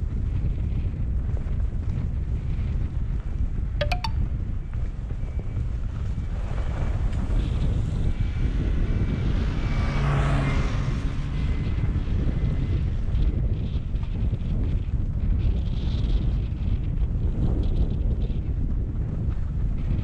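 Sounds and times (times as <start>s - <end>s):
wind buffeting microphone: 0.0s - 20.0s
snowmobile passing: 6.4s - 13.2s.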